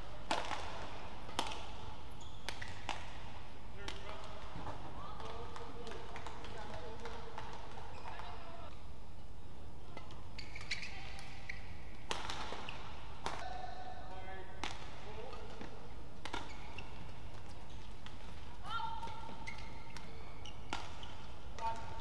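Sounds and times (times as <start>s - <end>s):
rackets hitting shuttlecock: 0.0s - 8.4s, 9.9s - 13.6s, 14.5s - 22.0s
court shoes squeaking: 0.0s - 8.9s, 9.8s - 13.6s, 14.6s - 22.0s.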